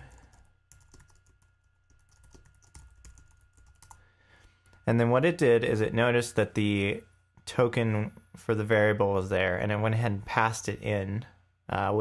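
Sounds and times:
computer keyboard typing: 0:00.0 - 0:04.0.

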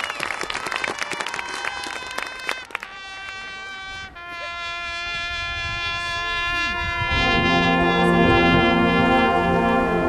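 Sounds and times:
low brass: 0:01.9 - 0:10.0
marching band sustained chord: 0:02.3 - 0:10.0.

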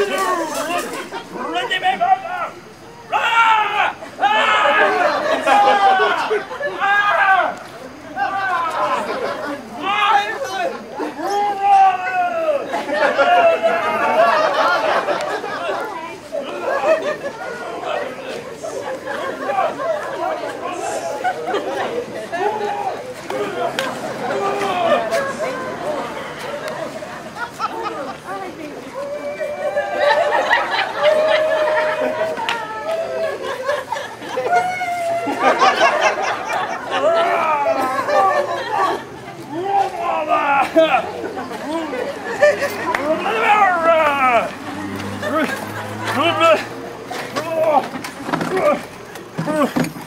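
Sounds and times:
indistinct chatter of voices: 0:00.0 - 0:50.0.

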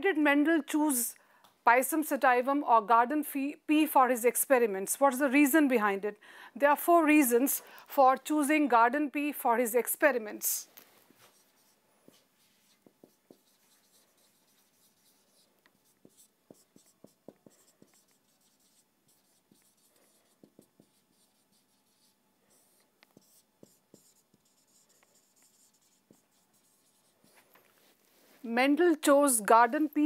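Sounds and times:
marker writing on whiteboard: 0:11.2 - 0:28.0.

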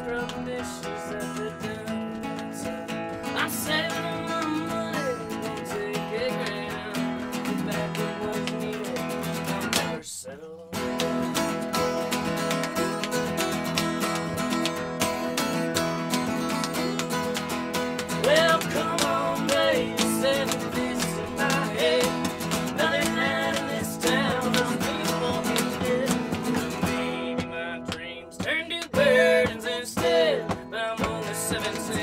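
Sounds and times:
slide guitar: 0:00.0 - 0:10.0, 0:10.7 - 0:32.0
acoustic guitar strumming: 0:00.0 - 0:32.0
hand slaps on legs: 0:10.8 - 0:32.0.

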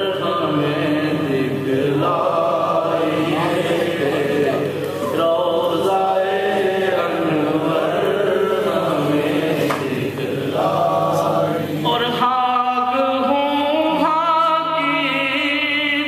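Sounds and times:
man singing with wavering pitch: 0:00.0 - 0:16.0
men chanting unaccompanied: 0:00.0 - 0:16.0.

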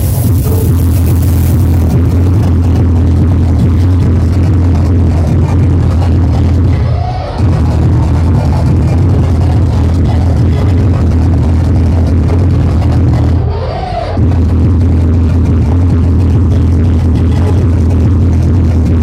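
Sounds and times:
hardcore techno: 0:00.0 - 0:19.0
pitched sweep: 0:00.0 - 0:19.0.

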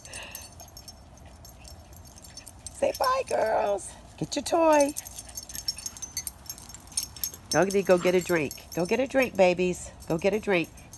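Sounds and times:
dog collar tags jingling: 0:00.0 - 0:10.9.

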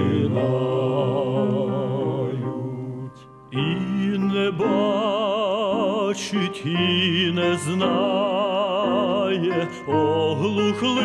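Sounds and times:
male vocal quartet singing: 0:00.0 - 0:11.0
piano accompaniment: 0:00.0 - 0:11.0.

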